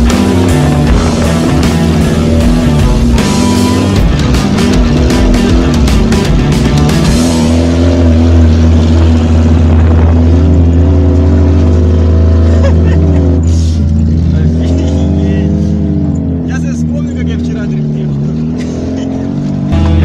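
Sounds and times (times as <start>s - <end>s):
loud music: 0.0s - 11.0s, 18.8s - 20.0s
car engine revving: 0.0s - 20.0s
voices talking: 12.5s - 20.0s.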